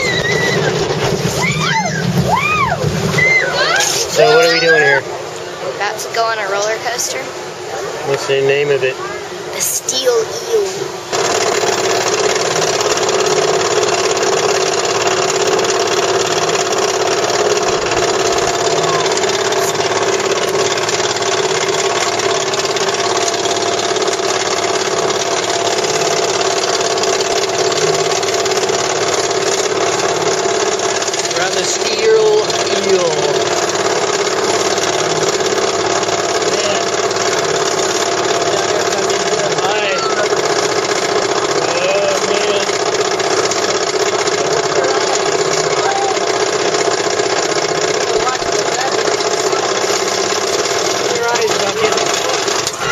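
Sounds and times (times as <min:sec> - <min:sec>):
roller coaster chain lift running: 0:00.0 - 0:52.9
faint riders' voices: 0:03.3 - 0:09.6, 0:18.0 - 0:21.7, 0:27.3 - 0:52.9.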